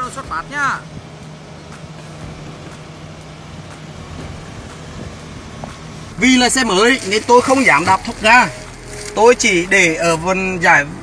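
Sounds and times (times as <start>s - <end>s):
car engine humming: 0.0s - 11.0s.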